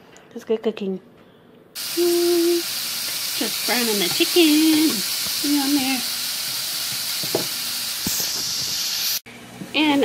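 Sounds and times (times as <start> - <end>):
chicken sizzling in frying pan: 1.8 - 9.2.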